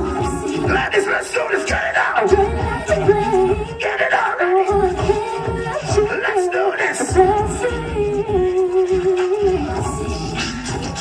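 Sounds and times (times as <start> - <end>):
pop backing track with bass beat: 0.0 - 11.0
woman singing into a microphone: 0.0 - 11.0.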